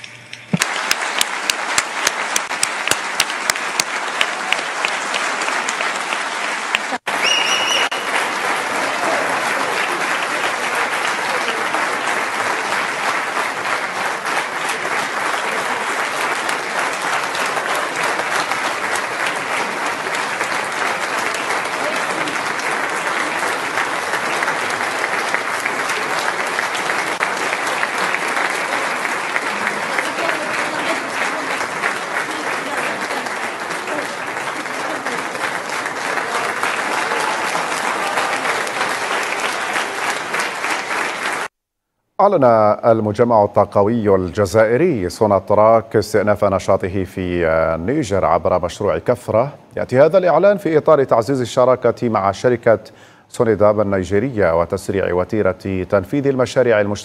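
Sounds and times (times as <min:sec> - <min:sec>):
large crowd applauding: 0:00.5 - 0:41.5.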